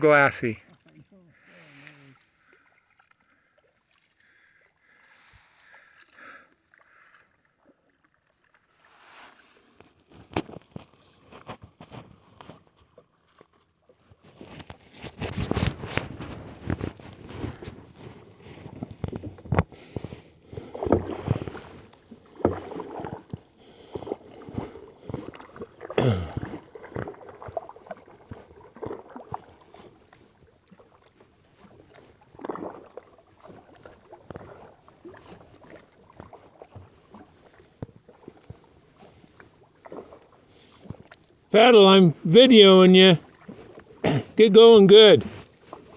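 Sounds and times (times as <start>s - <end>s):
water sloshing along hull: 0.0s - 41.5s, 43.2s - 44.4s, 45.2s - 45.9s
paddle splashing in water: 0.0s - 45.9s.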